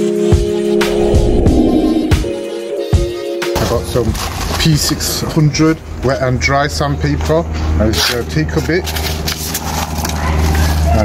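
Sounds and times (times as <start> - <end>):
low hum: 0.7 - 2.8.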